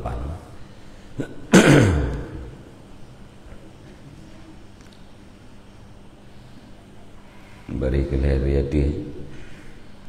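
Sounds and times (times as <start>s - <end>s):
man clearing his throat: 1.2s - 2.6s.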